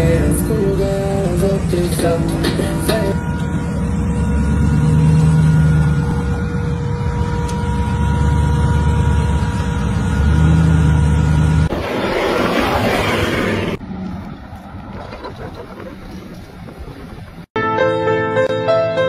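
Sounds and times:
engine running under load: 0.0s - 17.5s
steady whine: 0.0s - 17.5s
rushing noise: 11.4s - 17.5s.

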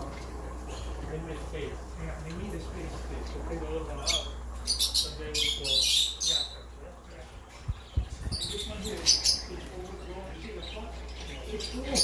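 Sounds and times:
parrots chirping: 3.5s - 12.0s.

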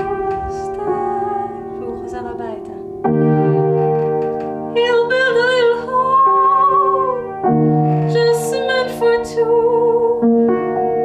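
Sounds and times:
woman singing with vibrato: 0.0s - 2.8s, 4.8s - 10.3s
piano chords: 0.0s - 11.0s.

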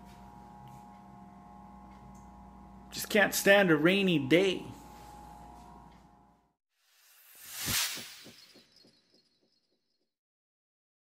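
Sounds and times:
whoosh: 6.9s - 9.2s.

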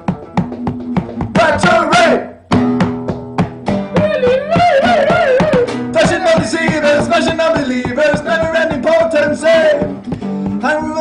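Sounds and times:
finger-drum taps: 0.0s - 1.8s, 2.5s - 11.0s
acoustic guitar strumming: 0.0s - 11.0s.

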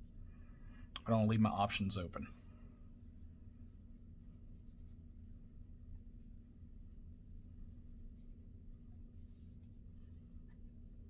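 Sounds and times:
low steady hum: 0.0s - 11.0s
paintbrush strokes on paper: 3.4s - 5.2s, 6.6s - 10.5s.

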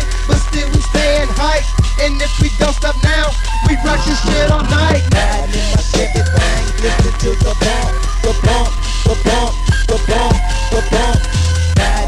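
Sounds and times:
hip hop beat with deep bass: 0.0s - 12.0s
rapped vocal: 0.0s - 12.0s.

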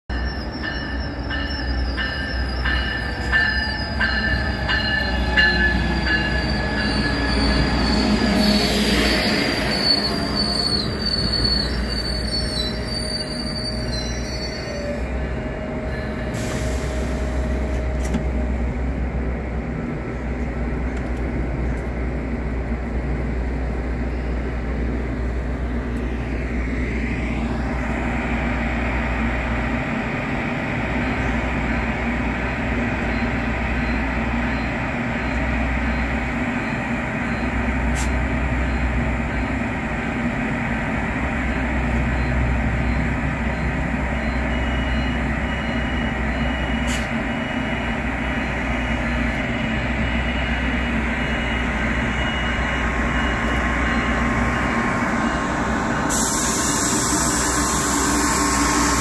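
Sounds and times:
train wheels squealing: 0.1s - 15.2s, 41.4s - 59.0s
low hum of standing train: 0.1s - 59.0s.

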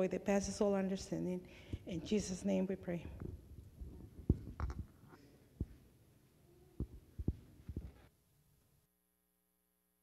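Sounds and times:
soft low thuds: 3.0s - 5.0s.

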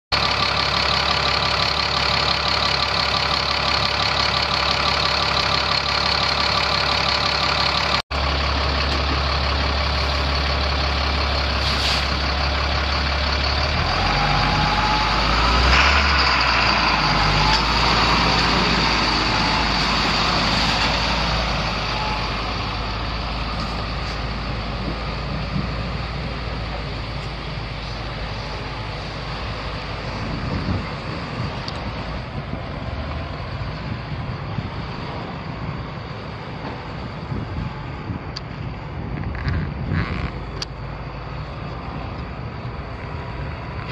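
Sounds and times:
diesel truck engine idling: 0.1s - 43.9s.

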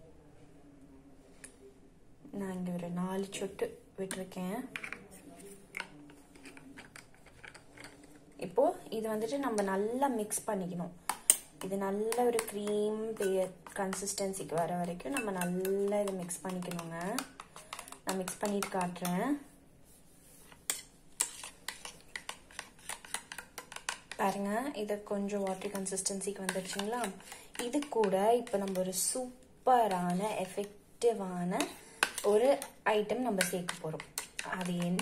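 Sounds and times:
spoon clinking in steel bowl: 12.2s - 19.2s.

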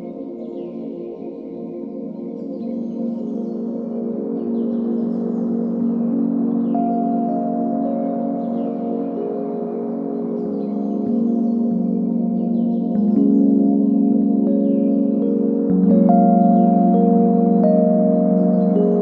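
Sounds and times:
ambient music sustained tones: 0.0s - 19.0s.

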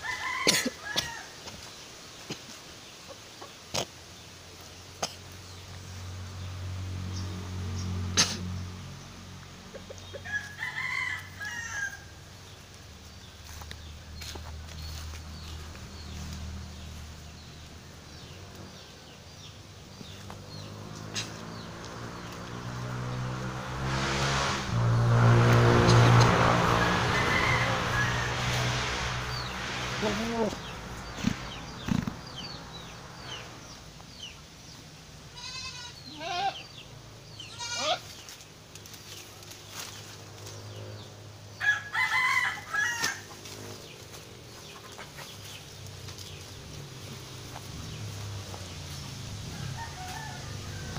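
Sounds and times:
rooster crowing: 0.0s - 1.4s, 10.2s - 12.2s, 26.3s - 29.0s, 41.6s - 43.4s, 49.5s - 50.9s
small birds chirping: 1.1s - 10.5s, 11.4s - 23.5s, 29.2s - 42.1s, 42.7s - 50.9s
goat bleating: 35.3s - 36.7s, 37.4s - 38.2s.

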